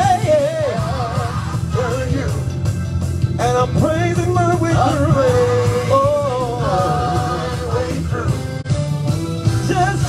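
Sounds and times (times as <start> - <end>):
man singing into a microphone: 0.0 - 2.5, 3.4 - 8.4, 9.6 - 10.0.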